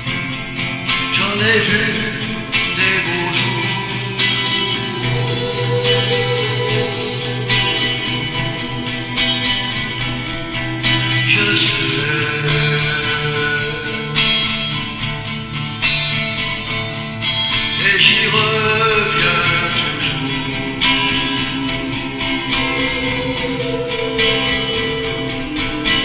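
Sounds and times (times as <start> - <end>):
acoustic guitar strumming: 0.0 - 26.0
man singing long notes: 1.2 - 15.3, 17.8 - 26.0.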